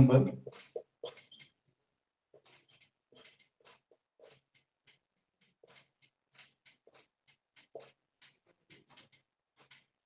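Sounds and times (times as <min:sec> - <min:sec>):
marker squeaking on whiteboard: 0:00.4 - 0:01.6, 0:02.3 - 0:10.0.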